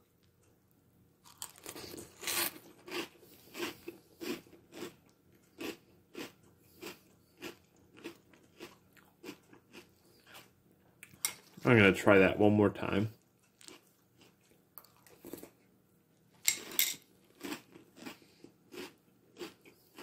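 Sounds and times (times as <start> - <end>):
chewing crunchy cereal: 1.2 - 11.6, 13.2 - 15.7, 16.4 - 20.0.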